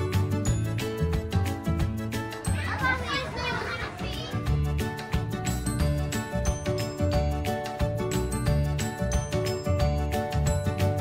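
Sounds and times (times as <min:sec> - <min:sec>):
background music with steady beat: 0:00.0 - 0:11.0
children's voices: 0:02.5 - 0:04.6.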